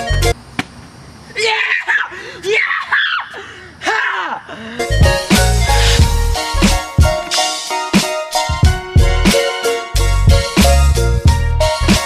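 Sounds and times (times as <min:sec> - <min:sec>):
boy screaming in excitement: 0:01.3 - 0:04.6.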